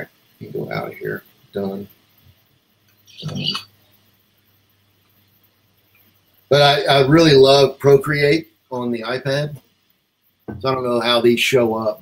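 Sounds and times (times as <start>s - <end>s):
man saying um: 0.0s - 1.8s.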